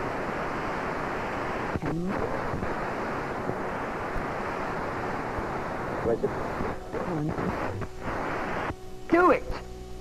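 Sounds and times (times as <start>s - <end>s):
static hiss: 0.0s - 10.0s.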